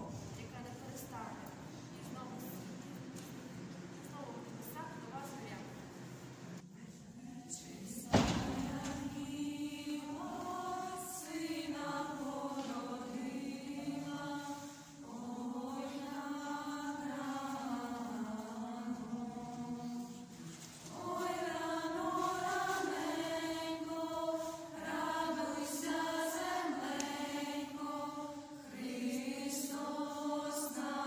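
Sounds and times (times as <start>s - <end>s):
girls singing carol unaccompanied: 7.1s - 31.0s.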